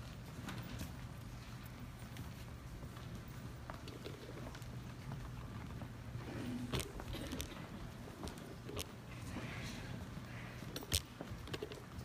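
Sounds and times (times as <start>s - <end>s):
faint footsteps on stage floor: 0.0s - 12.0s
steady low hum: 0.0s - 12.0s.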